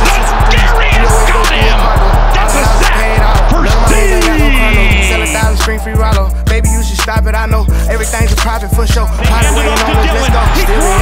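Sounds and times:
hip-hop backing music: 0:00.0 - 0:11.0.

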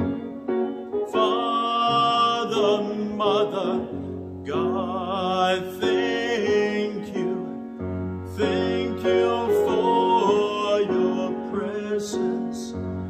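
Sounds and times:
piano accompaniment: 0:00.0 - 0:13.0
man singing a hymn: 0:01.0 - 0:13.0.

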